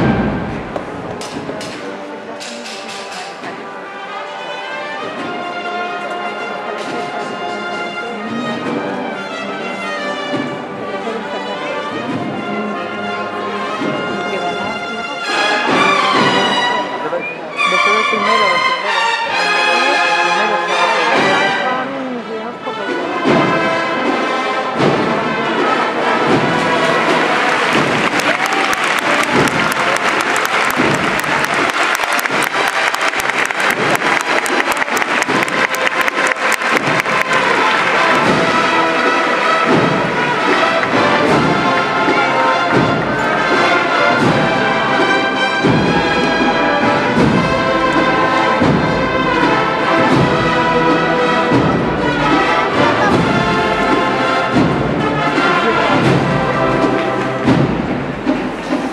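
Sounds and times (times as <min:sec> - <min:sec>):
brass band playing a march: 0:00.0 - 0:58.9
drums beating steadily: 0:00.0 - 0:58.9
crowd applauding: 0:25.2 - 0:58.9.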